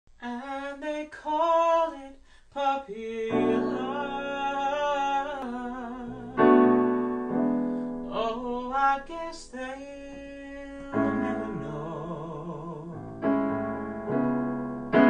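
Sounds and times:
man singing: 0:00.2 - 0:06.8, 0:08.1 - 0:13.2
piano chords: 0:03.3 - 0:15.0.

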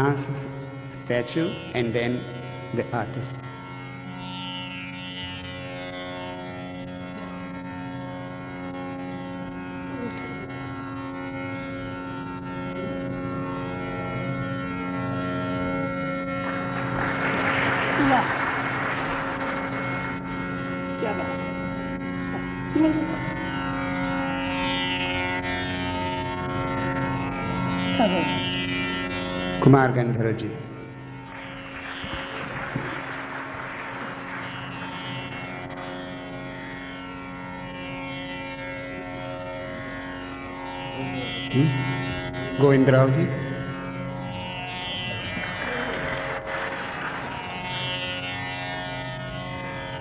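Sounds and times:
tanpura drone: 0:00.0 - 0:50.0.

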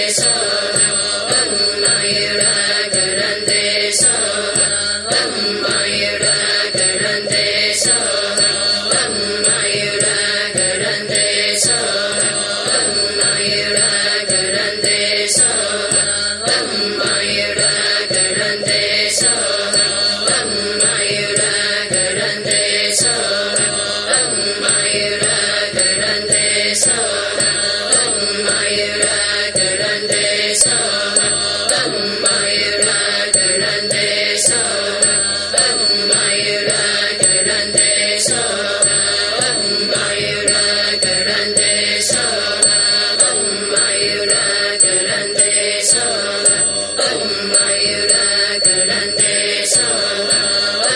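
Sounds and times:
mantra chanting: 0:00.0 - 0:50.9.

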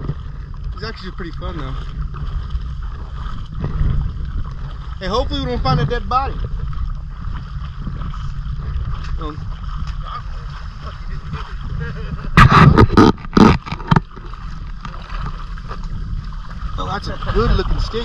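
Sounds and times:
water moving around legs: 0:00.0 - 0:18.0
wind on microphone: 0:00.0 - 0:18.0.

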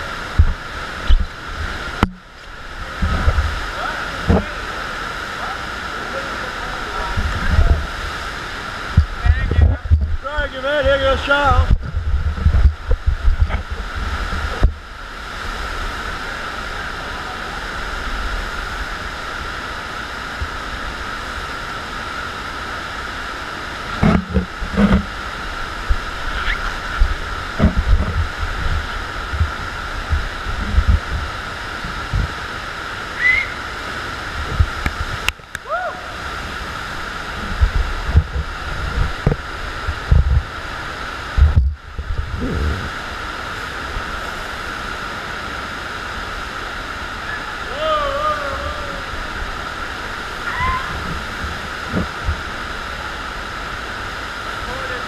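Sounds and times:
water rushing with high hum: 0:00.0 - 0:55.0
low thumps and knocks: 0:00.3 - 0:02.2, 0:08.9 - 0:10.2, 0:11.6 - 0:14.8, 0:23.9 - 0:25.1, 0:27.0 - 0:32.4, 0:34.4 - 0:35.3, 0:37.3 - 0:40.6, 0:41.3 - 0:42.9, 0:50.9 - 0:52.5.

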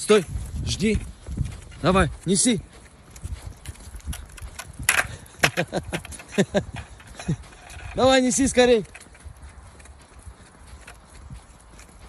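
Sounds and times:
footsteps on wet pavement: 0:00.0 - 0:12.0.

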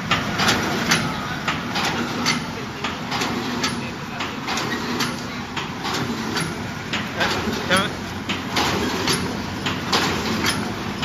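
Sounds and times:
machine hum: 0:00.0 - 0:11.0
machine knocking rhythmically: 0:00.0 - 0:11.0.

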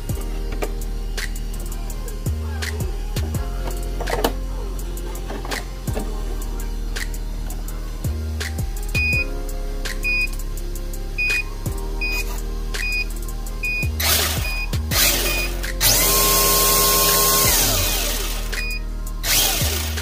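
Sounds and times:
background music with beeping beat: 0:00.0 - 0:20.0
electric motor whining: 0:11.1 - 0:20.0.

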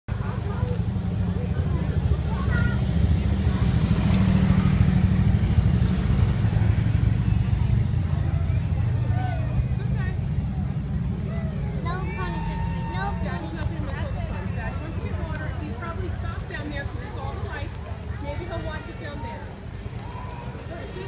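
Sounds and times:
crowd chatter and calls: 0:00.1 - 0:21.0
motorcycle engines rumbling: 0:00.1 - 0:21.0.

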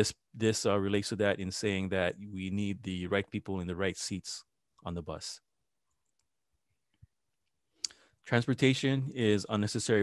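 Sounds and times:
man talking: 0:00.0 - 0:05.4, 0:08.3 - 0:10.0.

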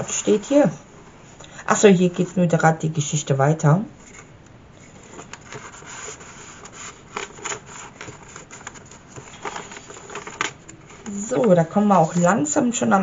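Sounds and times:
paper rustling: 0:04.1 - 0:12.8.

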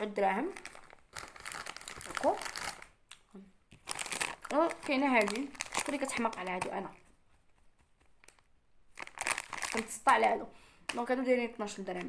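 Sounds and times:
plastic packaging crinkling: 0:00.0 - 0:03.1, 0:03.7 - 0:07.1, 0:08.1 - 0:12.0.

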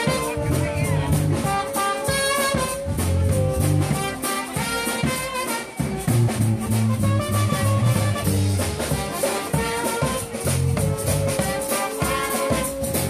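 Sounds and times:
brass marching band playing: 0:00.0 - 0:13.0
steady drum beat: 0:00.0 - 0:13.0.

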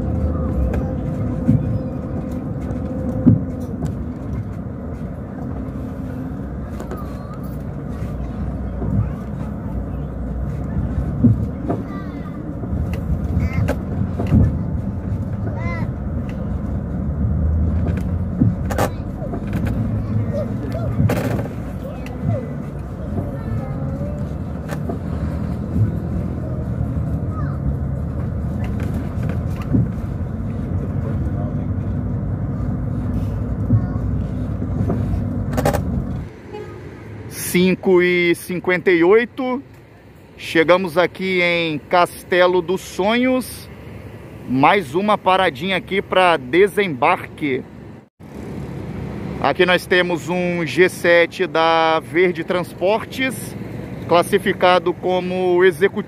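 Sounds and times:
bus engine and road rumble: 0:00.0 - 0:56.0.

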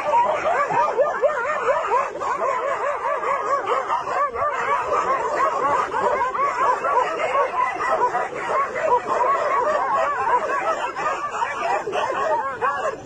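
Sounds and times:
dogs barking and yelping: 0:00.0 - 0:13.0.

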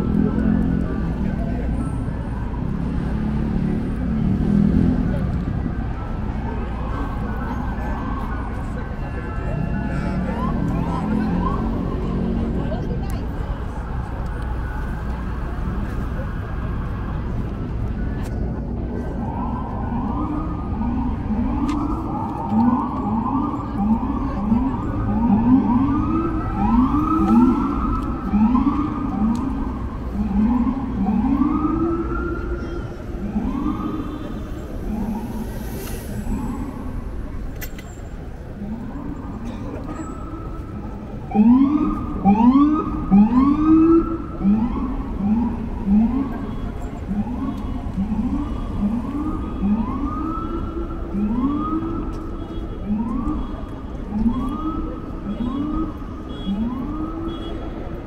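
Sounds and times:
sirens whooping: 0:00.0 - 0:58.0.

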